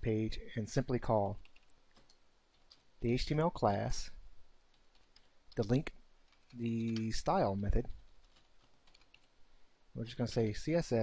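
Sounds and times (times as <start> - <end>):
computer keyboard keystrokes: 1.4 - 2.8, 7.9 - 9.3.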